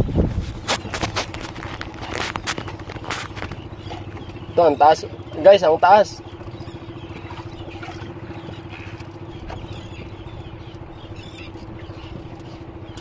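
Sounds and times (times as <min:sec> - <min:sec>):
boat engine pulsing drone: 0:00.0 - 0:13.0.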